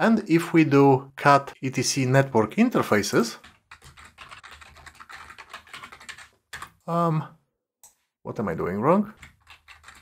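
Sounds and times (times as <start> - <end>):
typing on computer keyboard: 3.4 - 6.8, 9.1 - 10.0.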